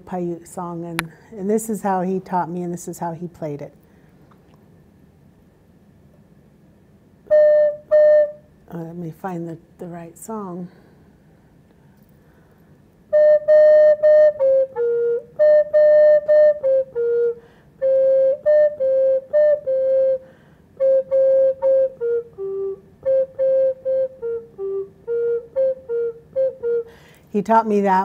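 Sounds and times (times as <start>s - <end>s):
wooden flute melody: 7.3s - 8.5s, 13.1s - 27.0s.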